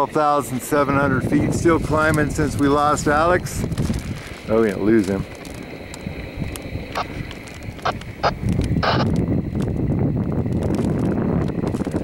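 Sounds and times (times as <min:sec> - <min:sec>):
propane burner roaring: 0:00.0 - 0:12.0.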